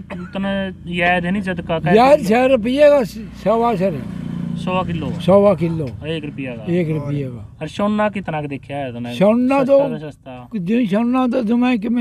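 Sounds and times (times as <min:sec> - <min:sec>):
vehicle engine hum: 0:00.0 - 0:12.0
man speaking: 0:04.7 - 0:12.0.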